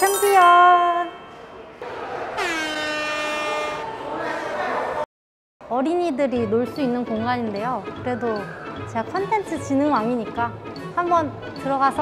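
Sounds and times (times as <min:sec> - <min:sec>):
held horn-like note: 0:02.4 - 0:03.9.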